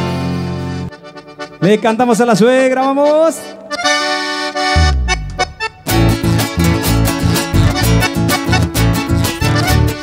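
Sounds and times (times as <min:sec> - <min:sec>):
live band playing dance beat: 0:04.6 - 0:10.0.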